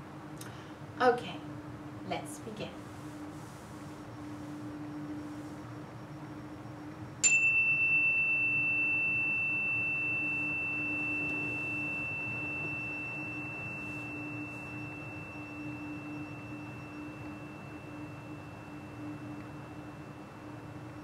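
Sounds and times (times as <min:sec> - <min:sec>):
meditation chime ringing: 0:07.2 - 0:21.0.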